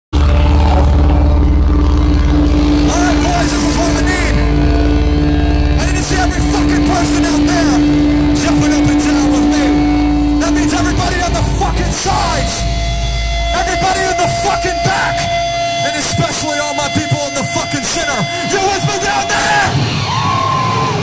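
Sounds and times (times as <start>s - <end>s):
crowd yelling: 0.2s - 21.0s
live rock concert: 0.2s - 21.0s.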